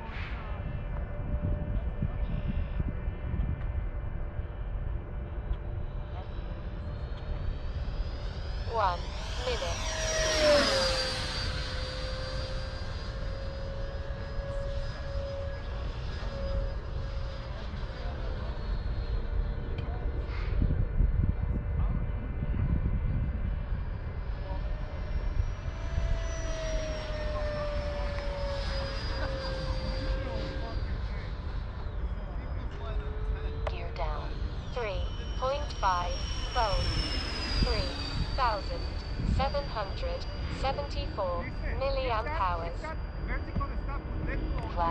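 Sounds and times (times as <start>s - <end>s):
wind on microphone: 0.0s - 14.7s, 19.6s - 26.3s, 33.8s - 44.9s
model jet fan whining: 0.0s - 44.9s.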